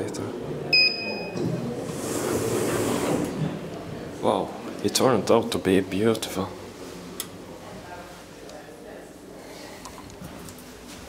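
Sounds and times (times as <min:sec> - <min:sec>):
elevator doors sliding open: 0:01.3 - 0:03.7.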